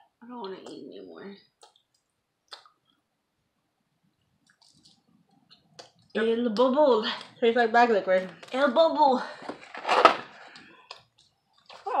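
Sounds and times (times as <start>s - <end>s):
breathy woman's voice: 8.2s - 9.6s.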